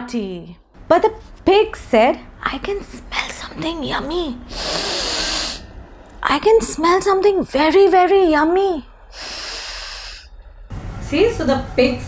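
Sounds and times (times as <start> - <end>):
woman sniffing through nose: 4.5 - 5.6, 9.1 - 10.3.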